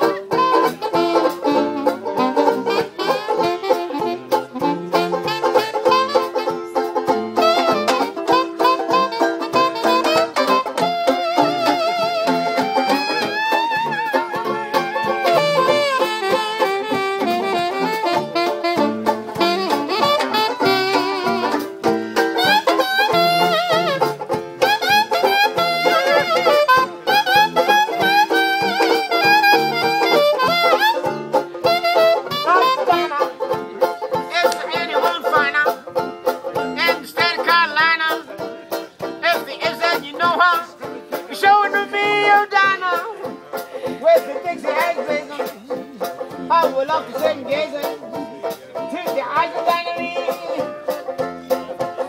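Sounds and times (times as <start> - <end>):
jazz band playing: 0.0 - 52.0
strummed banjo: 0.0 - 52.0.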